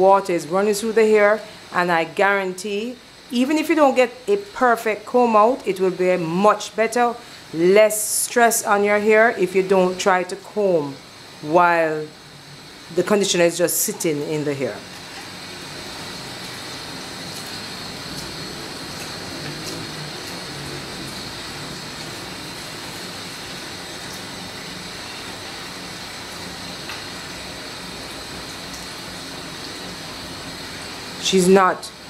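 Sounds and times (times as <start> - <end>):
water spraying into sink: 13.4 - 31.2.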